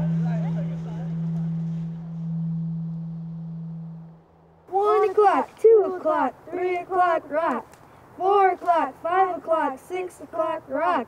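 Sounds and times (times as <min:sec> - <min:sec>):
low sustained drone tone: 0:00.0 - 0:04.7
voices chanting: 0:04.7 - 0:11.0.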